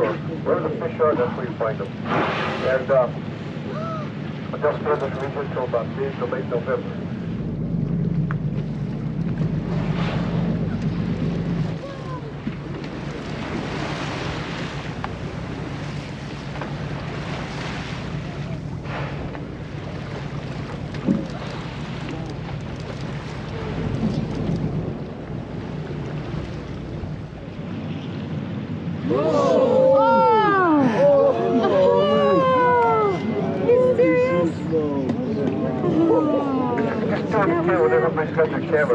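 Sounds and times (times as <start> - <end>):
water washing against hull: 0.0 - 38.8
boat engine droning: 0.0 - 38.9.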